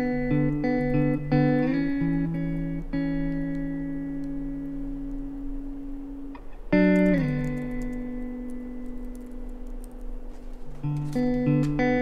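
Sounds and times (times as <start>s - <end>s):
guitar chord ringing: 0.0s - 12.0s.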